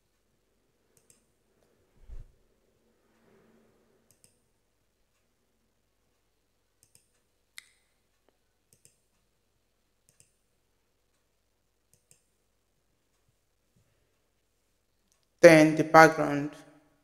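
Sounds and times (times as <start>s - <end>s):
computer mouse clicks: 1.0s - 1.3s, 4.1s - 4.5s, 6.8s - 7.3s, 8.7s - 9.3s, 10.0s - 10.5s, 11.9s - 12.3s.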